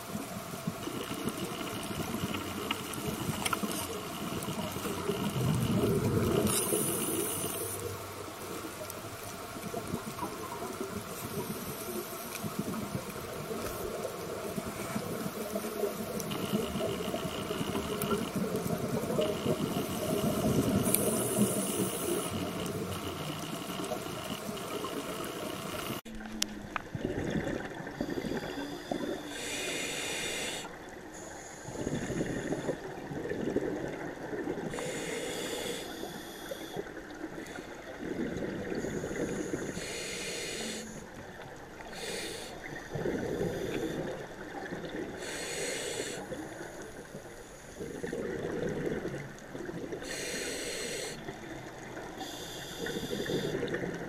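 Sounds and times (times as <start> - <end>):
scuba exhaust bubbles: 0.0 - 54.0
underwater water noise: 0.0 - 54.0.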